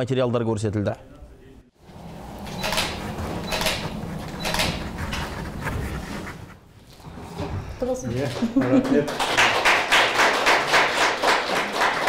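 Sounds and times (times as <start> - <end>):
small group applauding: 8.2 - 12.0.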